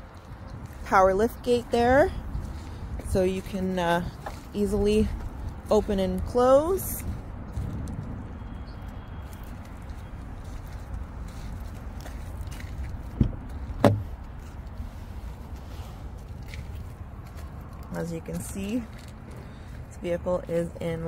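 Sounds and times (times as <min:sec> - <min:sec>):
steady low rumble: 0:00.0 - 0:21.0
car door latch clicks: 0:13.2 - 0:14.0.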